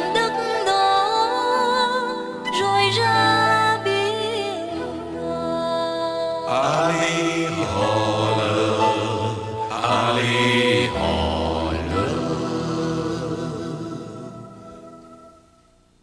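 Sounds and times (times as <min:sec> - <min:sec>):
men singing together: 0:06.5 - 0:14.5.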